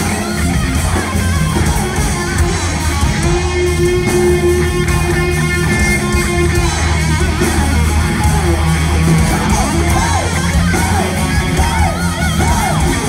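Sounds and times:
heavy metal band playing live: 0.0 - 13.0.

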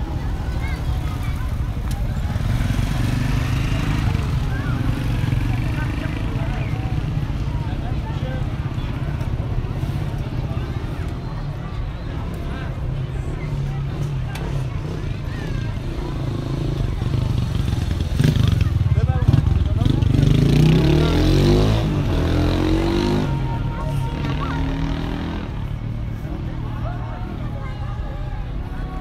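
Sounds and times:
people talking: 0.0 - 29.0.

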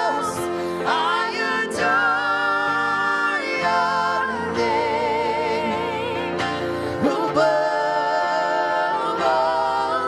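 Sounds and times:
keyboard: 0.0 - 10.0
two women singing: 0.0 - 10.0.

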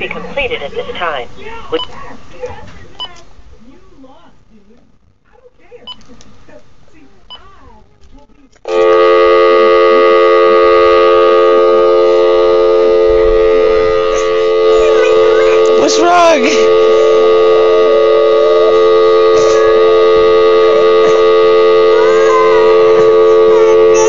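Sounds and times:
electronic telephone tone: 8.7 - 24.0
toddler whimpering and crying: 22.0 - 24.0.

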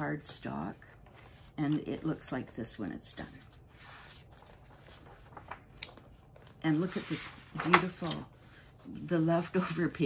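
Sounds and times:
magazine pages rustling: 0.2 - 10.0.

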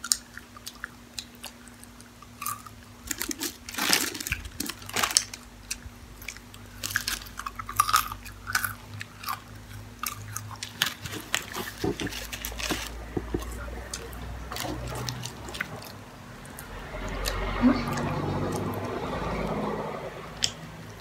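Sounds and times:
crunchy chewing of fries: 0.0 - 21.0.

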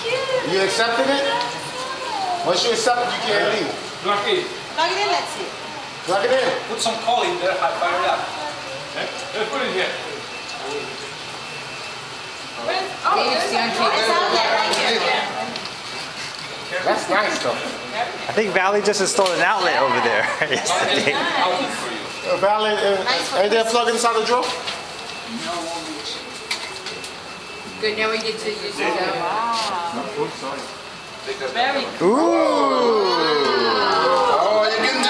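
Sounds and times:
indoor room hubbub: 0.0 - 35.0
person laughing: 20.1 - 21.2
soft voices: 32.0 - 34.7.

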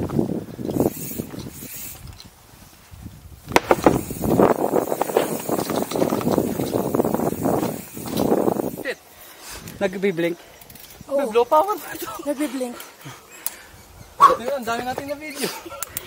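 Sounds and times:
bike chain and frame rattling: 0.5 - 2.5, 3.6 - 16.0.

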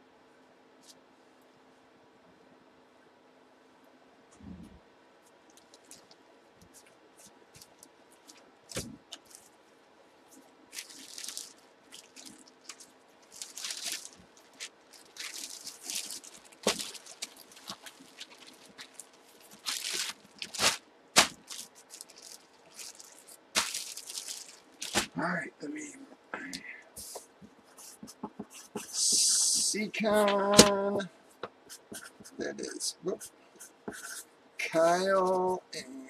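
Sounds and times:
plastic bag crinkling: 5.5 - 6.9, 7.6 - 9.5, 10.7 - 25.2.

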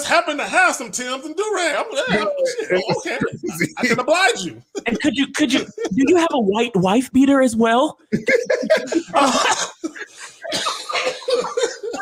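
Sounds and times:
men laughing: 1.4 - 6.4, 8.1 - 12.0.

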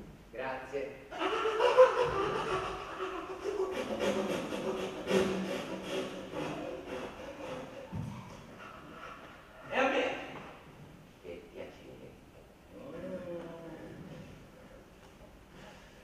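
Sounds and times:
people laughing: 1.1 - 9.3.

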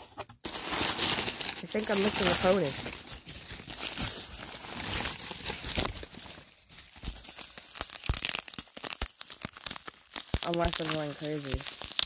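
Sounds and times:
bubble wrap crinkling and crackling: 0.0 - 12.0.

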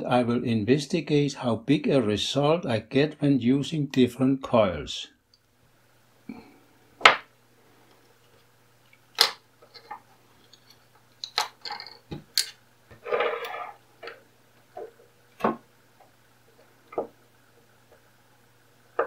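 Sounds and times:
wire rustling: 9.6 - 14.2.

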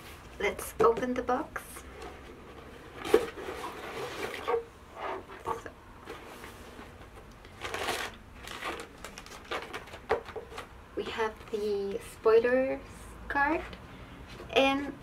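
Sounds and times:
cardboard and paper rustling: 1.9 - 10.7.

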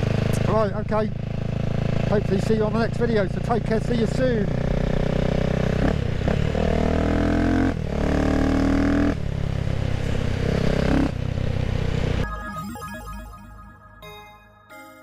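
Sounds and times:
motorcycle engine revving: 0.0 - 12.2
music: 12.2 - 15.0.

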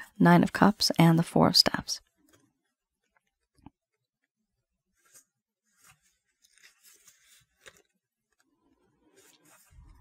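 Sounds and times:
paper pages turning: 2.3 - 10.0.

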